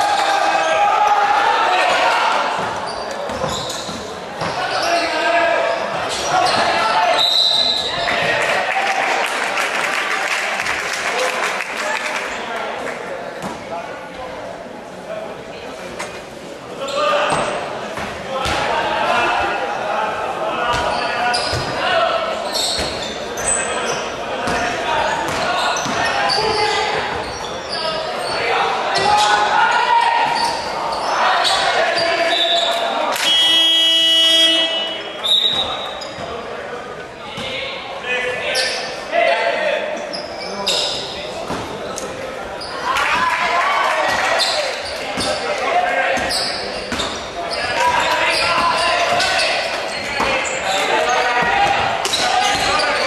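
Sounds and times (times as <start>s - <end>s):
voices in echoing hall: 0.0s - 53.0s
buzzer tone: 33.2s - 35.0s.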